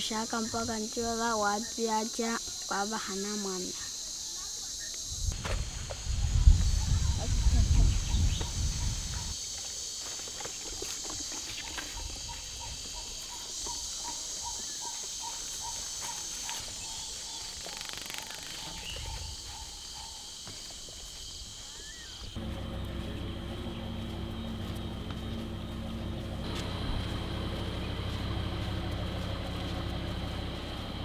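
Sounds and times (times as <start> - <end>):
insects chirring: 0.0 - 31.0
low hum with held tones: 22.4 - 31.0.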